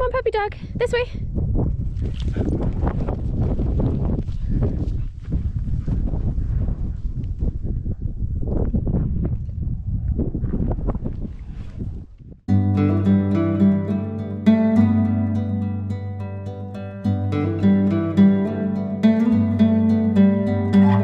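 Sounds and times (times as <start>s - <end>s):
wind buffeting microphone: 0.0s - 12.5s
person laughing: 20.7s - 21.0s.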